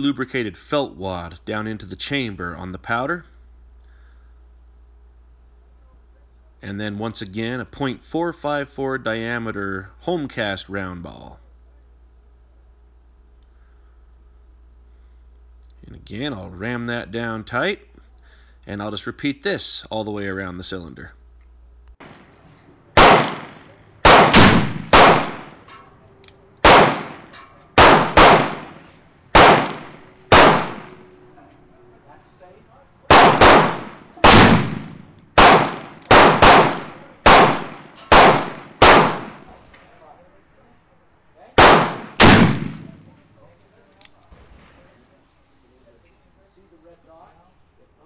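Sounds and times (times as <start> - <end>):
revolver gunshots: 22.9 - 25.7, 26.6 - 31.2, 33.1 - 39.6, 41.6 - 43.2.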